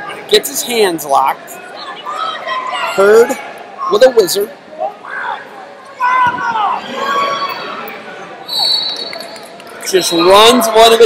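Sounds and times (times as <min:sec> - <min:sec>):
people shouting: 0:04.9 - 0:07.8
high whistle-like tone: 0:08.5 - 0:09.4.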